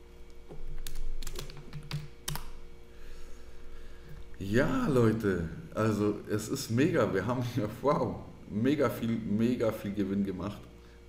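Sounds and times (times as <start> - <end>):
keyboard keys clicking: 0.8 - 2.5.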